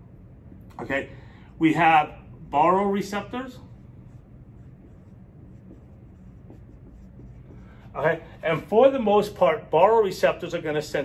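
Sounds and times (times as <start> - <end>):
marker writing on whiteboard: 3.2 - 9.0.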